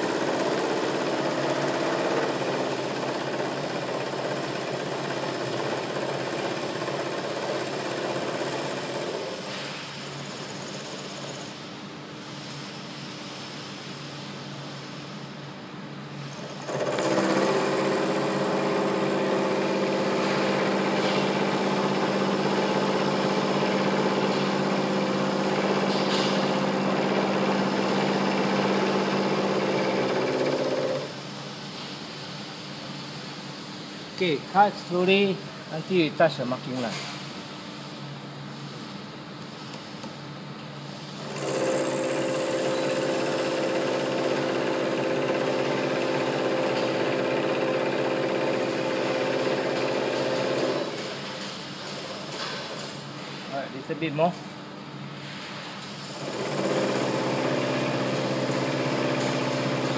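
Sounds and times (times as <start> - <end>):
milling machine hum: 0.0 - 9.6, 16.2 - 31.4, 40.1 - 51.3, 56.1 - 59.9.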